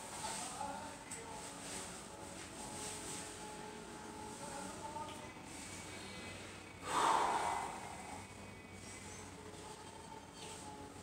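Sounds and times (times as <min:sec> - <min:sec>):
man breathing out hard: 0:06.8 - 0:08.2.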